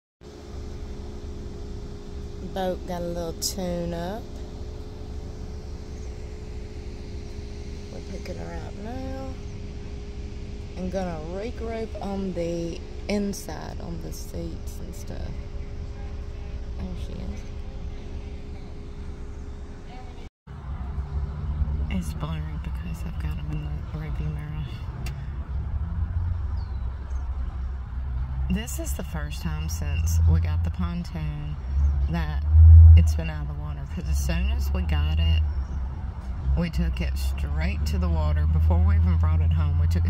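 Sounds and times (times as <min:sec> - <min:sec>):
vehicle idling rumble: 0:00.2 - 0:40.0.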